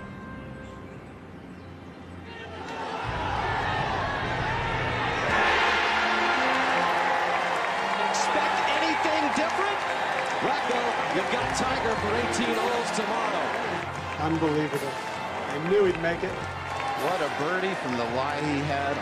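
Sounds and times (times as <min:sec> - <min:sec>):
crowd cheering: 0:02.2 - 0:19.0
people shouting: 0:02.3 - 0:12.6.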